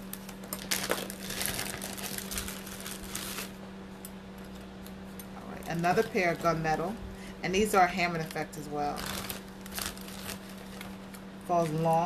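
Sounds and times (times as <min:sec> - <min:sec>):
packaging crinkling and rustling: 0:00.0 - 0:03.6, 0:08.2 - 0:12.0.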